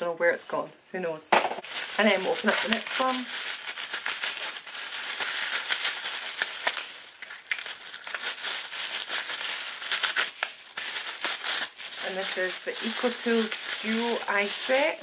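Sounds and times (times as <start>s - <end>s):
tissue paper crinkling: 1.6s - 15.0s.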